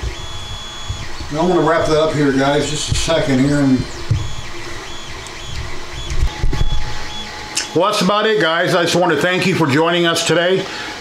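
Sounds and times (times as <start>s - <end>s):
small motor whining in spurts: 0.0s - 8.3s.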